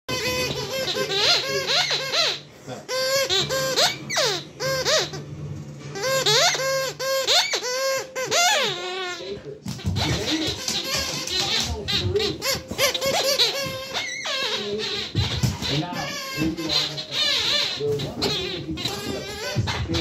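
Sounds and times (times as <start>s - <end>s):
squeaky toy squeaking: 0.1s - 5.3s, 5.9s - 20.0s.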